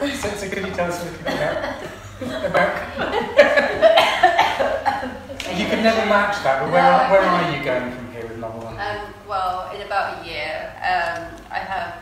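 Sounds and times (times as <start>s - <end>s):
people talking: 0.0s - 4.0s, 5.4s - 12.0s
person coughing: 1.2s - 2.0s, 3.9s - 5.2s.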